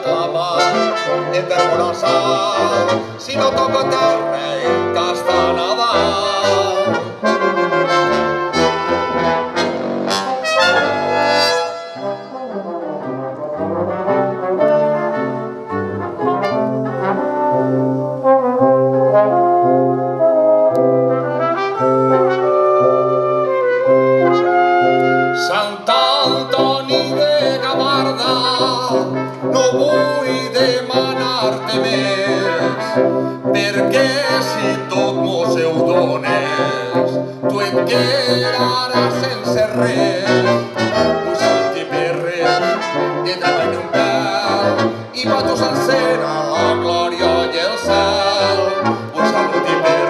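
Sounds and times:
brass quintet playing: 0:00.0 - 0:50.0
low tuba bass line: 0:00.0 - 0:50.0.

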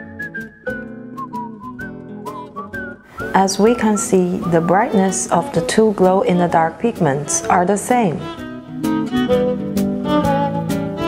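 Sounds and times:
whistled tune: 0:00.0 - 0:05.4
plucked guitar chords: 0:00.0 - 0:11.0.

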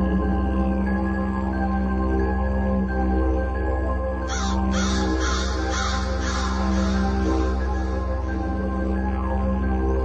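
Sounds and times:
low droning music: 0:00.0 - 0:10.0
crow cawing: 0:04.3 - 0:08.4.

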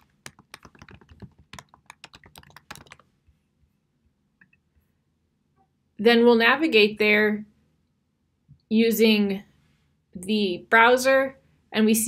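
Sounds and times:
typing on computer keyboard: 0:00.0 - 0:03.1.

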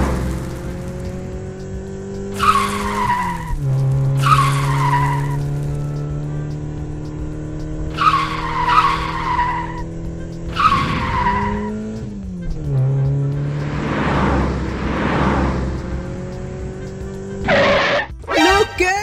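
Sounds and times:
tyre screech squeals: 0:02.4 - 0:05.5, 0:07.9 - 0:09.9, 0:10.5 - 0:11.8, 0:17.4 - 0:18.5.

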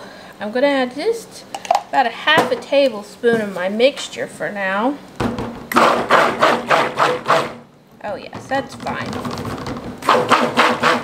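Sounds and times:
stick blender bursts: 0:05.7 - 0:07.6, 0:10.0 - 0:11.0.

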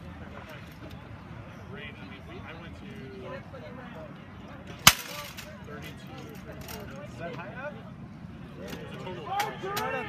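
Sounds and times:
rattan sword blow cracking: 0:04.9 - 0:05.4.

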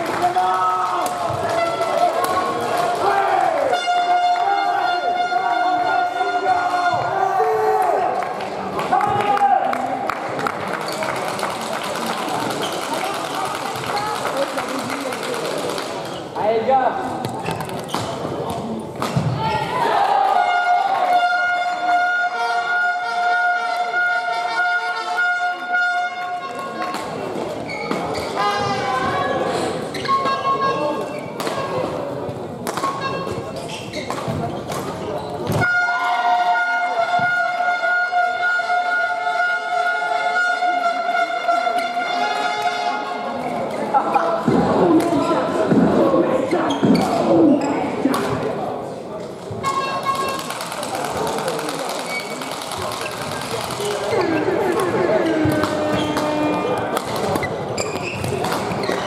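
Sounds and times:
murmur of voices: 0:00.0 - 0:59.0.

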